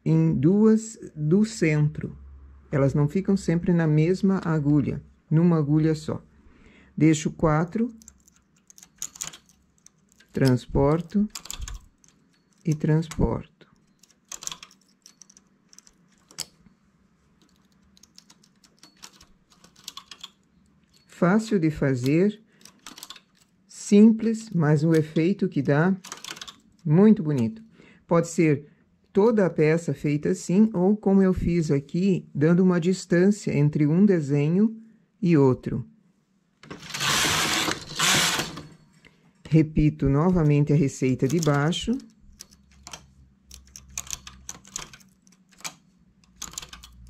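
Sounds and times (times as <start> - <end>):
knitting machine metal clicks: 7.6 - 16.8, 17.4 - 27.6, 36.6 - 38.8, 40.2 - 47.0.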